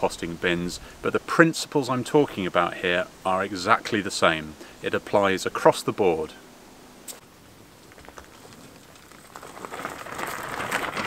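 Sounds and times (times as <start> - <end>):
wheelbarrow wheel crunching gravel: 7.6 - 11.0
footsteps on gravel: 7.8 - 11.0.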